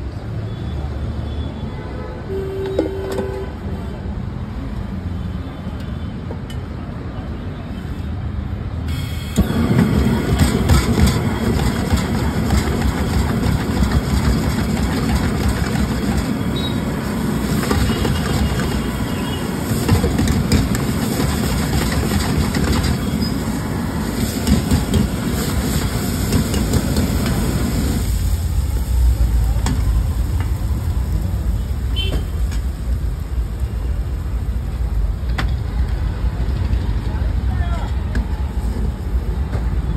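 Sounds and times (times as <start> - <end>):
rice sizzling in a wok: 8.9 - 36.5
gas burner noise: 8.9 - 39.8.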